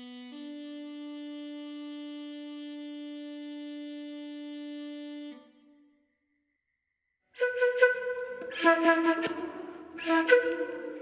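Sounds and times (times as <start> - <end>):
long held wind instrument note: 0.0 - 5.9, 7.4 - 11.0.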